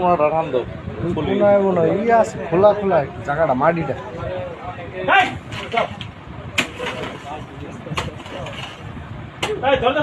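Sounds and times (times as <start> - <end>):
hoe striking packed earth: 5.2 - 9.6.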